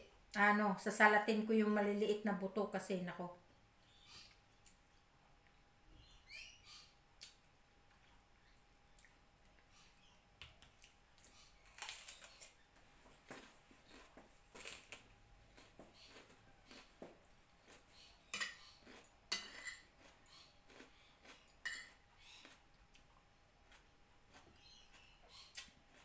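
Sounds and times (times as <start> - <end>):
fork clinking on ceramic plate: 18.3 - 18.6, 19.3 - 19.8, 21.6 - 22.0.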